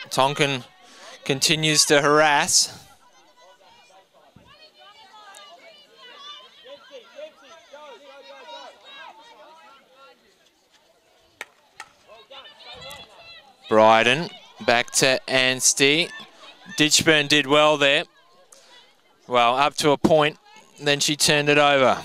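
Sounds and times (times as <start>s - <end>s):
distant players shouting: 11.7s - 22.0s.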